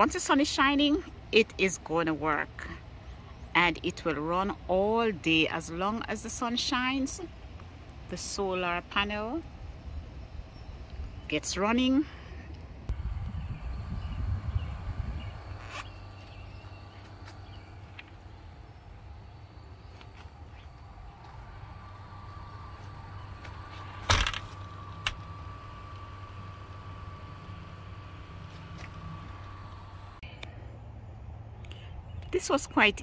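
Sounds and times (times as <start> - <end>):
exhaust fan humming: 0.0 - 33.0
low rumble: 12.4 - 32.2
thin high whine: 12.9 - 30.3.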